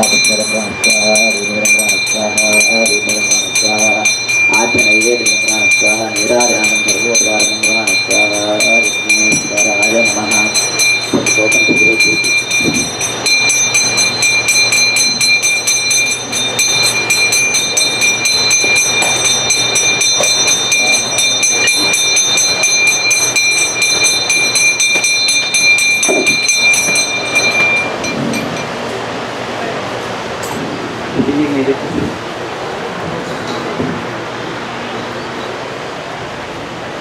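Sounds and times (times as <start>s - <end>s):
bell rung rapidly: 0.0s - 28.8s.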